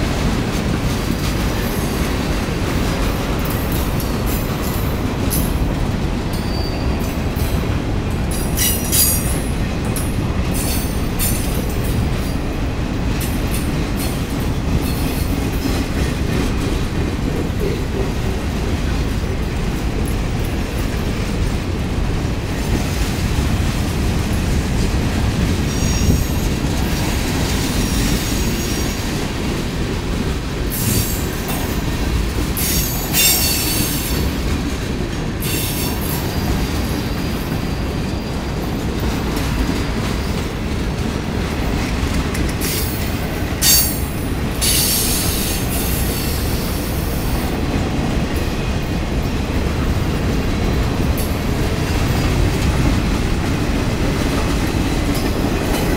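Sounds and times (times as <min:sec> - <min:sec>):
train wheels rumbling and rattling: 0:00.0 - 0:55.9
wheels squealing: 0:06.3 - 0:07.1.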